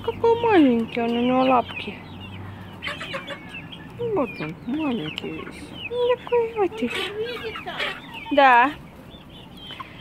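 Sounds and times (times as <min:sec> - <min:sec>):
chickens clucking and peeping: 0:00.0 - 0:10.0.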